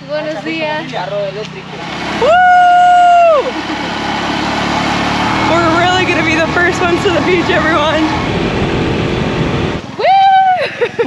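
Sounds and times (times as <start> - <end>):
small motorcycle engine: 0.0 - 10.2
person crying woo: 2.2 - 3.7, 10.0 - 11.0
wind noise: 5.4 - 10.1.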